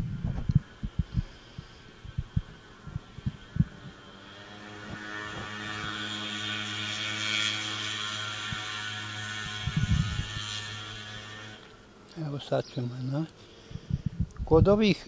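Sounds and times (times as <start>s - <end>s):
honeybees buzzing: 0.0s - 14.1s.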